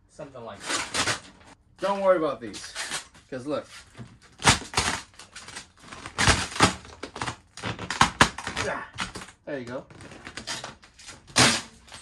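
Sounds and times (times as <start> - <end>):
vinyl film crackling and crinkling: 0.7 - 12.0.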